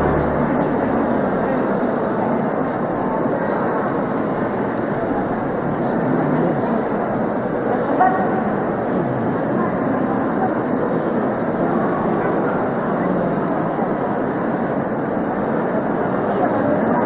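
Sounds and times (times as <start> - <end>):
organ chord: 0.0 - 1.4
congregation murmur: 0.0 - 17.0.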